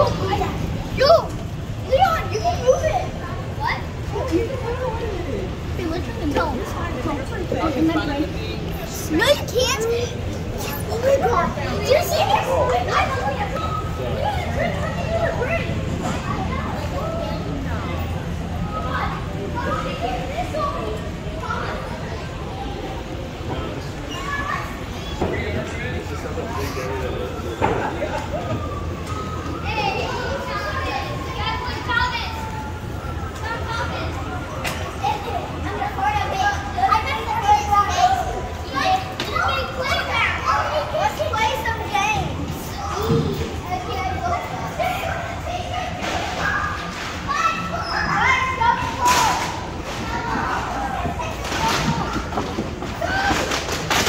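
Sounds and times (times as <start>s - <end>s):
children chattering and calling: 0.0s - 54.0s.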